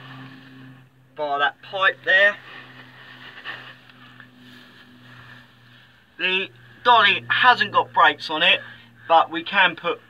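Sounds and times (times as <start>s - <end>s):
engine idling hum: 0.0s - 10.0s
rustling near microphone: 1.7s - 6.8s.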